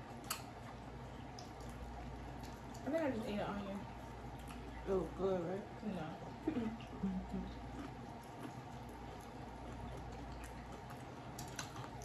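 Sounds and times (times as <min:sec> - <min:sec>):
low room hum: 0:00.0 - 0:12.0
tortilla chips crackling: 0:07.7 - 0:12.0.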